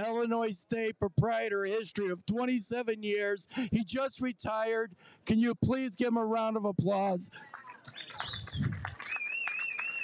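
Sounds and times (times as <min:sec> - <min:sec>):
crowd applauding: 0:07.4 - 0:10.0
person whistling high note: 0:08.3 - 0:10.0.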